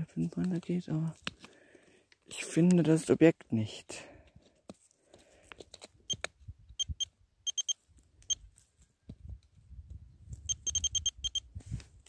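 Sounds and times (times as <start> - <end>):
pinpointer short high beeps: 6.8 - 8.4, 10.5 - 11.5.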